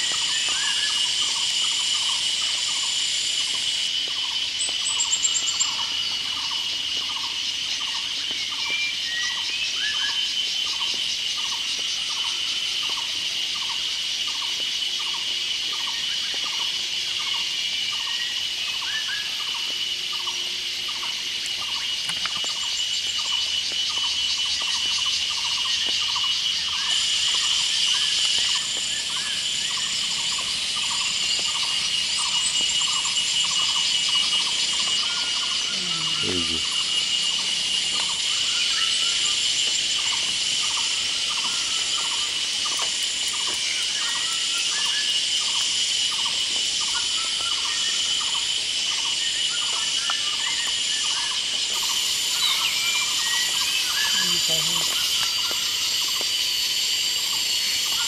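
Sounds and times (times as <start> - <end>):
faint chirps: 0.0 - 16.6, 17.2 - 58.0
insects shrilling: 0.0 - 58.0.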